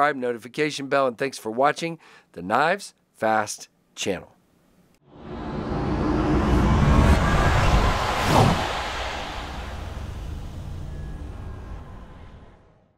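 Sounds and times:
whoosh: 0:05.0 - 0:12.9
quick downward sweep: 0:05.1 - 0:12.8
low rumble: 0:05.1 - 0:12.9.

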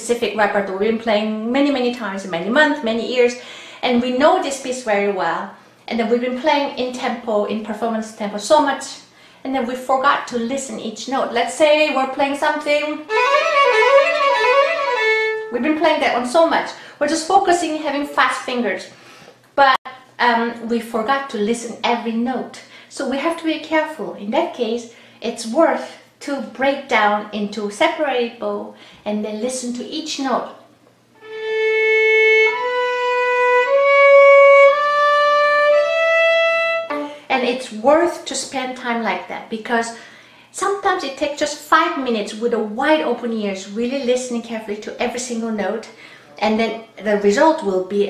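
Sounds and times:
violin quick run of notes: 0:13.1 - 0:15.5, 0:31.2 - 0:37.0.

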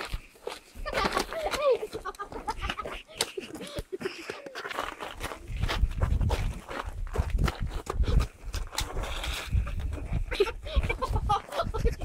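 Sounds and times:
footsteps on packed snow: 0:00.0 - 0:12.0.

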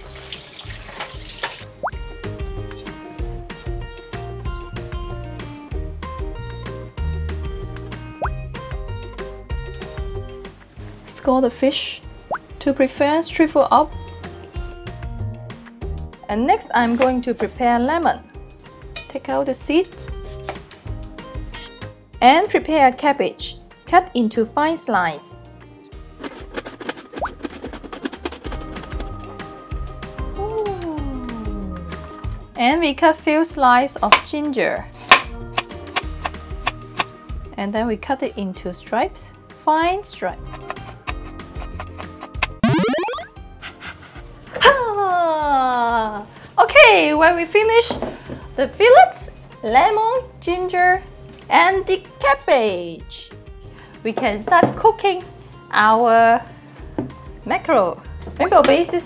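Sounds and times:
tap water running: 0:00.0 - 0:01.9.

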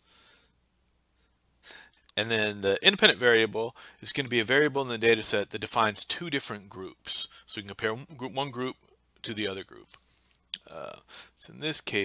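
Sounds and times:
person speaking: 0:02.1 - 0:12.0.

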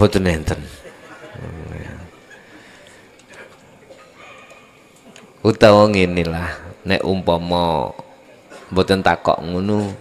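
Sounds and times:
man humming into microphone: 0:01.4 - 0:02.1.

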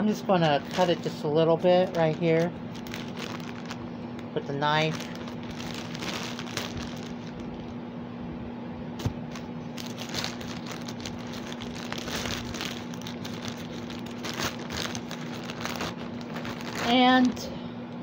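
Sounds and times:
plastic bag crinkling: 0:00.0 - 0:07.8, 0:09.0 - 0:17.5.

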